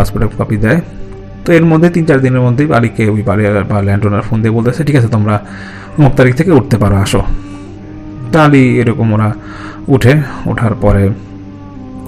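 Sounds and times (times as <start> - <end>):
man talking: 0.0 - 5.4, 6.0 - 7.4, 8.2 - 11.2
soft background music: 0.0 - 12.0.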